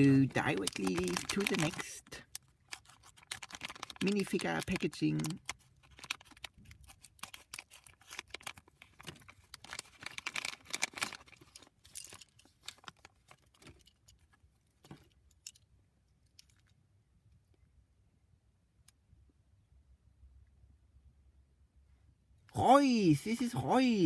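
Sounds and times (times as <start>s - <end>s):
plastic foil bag crinkling: 0.0s - 13.9s
plastic parts clicking: 0.3s - 15.6s.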